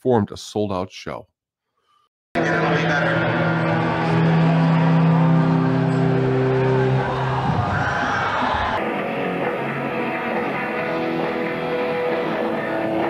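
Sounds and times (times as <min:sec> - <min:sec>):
live rock band: 0:03.6 - 0:13.0
live punk rock band: 0:04.0 - 0:13.0.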